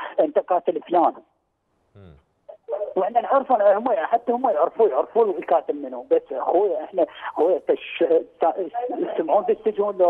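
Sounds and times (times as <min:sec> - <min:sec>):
man speaking over telephone: 0:02.0 - 0:02.2.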